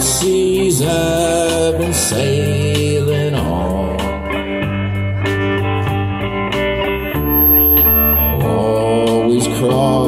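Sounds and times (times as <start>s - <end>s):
acoustic guitar: 0.0s - 10.0s
drums: 0.0s - 10.0s
electric guitar: 0.0s - 10.0s.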